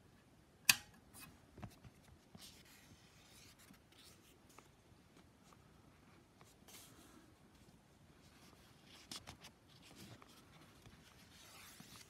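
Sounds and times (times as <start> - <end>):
paper pages rustling and turning: 7.6 - 12.0.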